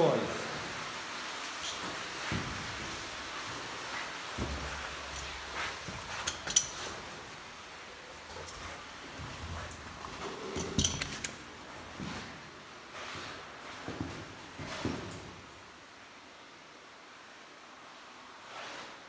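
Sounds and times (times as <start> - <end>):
light clicks and clinks: 4.4 - 7.2, 9.6 - 11.4.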